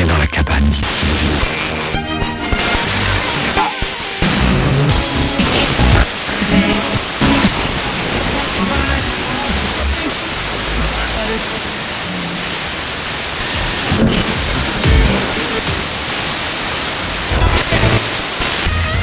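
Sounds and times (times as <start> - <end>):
faint radio music: 0.0 - 12.5, 13.4 - 19.0
radio static hiss: 0.0 - 19.0
faint radio speech: 5.4 - 12.4, 13.8 - 16.0.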